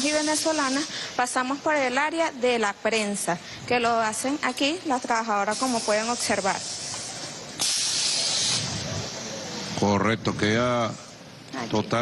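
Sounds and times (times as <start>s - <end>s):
compressed air burst: 0.0s - 1.3s, 5.4s - 9.8s.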